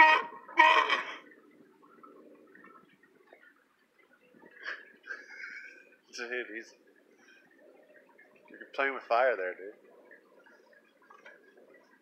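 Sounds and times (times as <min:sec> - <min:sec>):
sea lion barking: 0:00.0 - 0:01.3.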